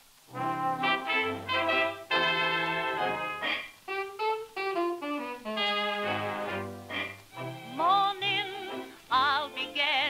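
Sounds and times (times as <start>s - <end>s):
wind instrument descending notes: 0.3s - 7.4s.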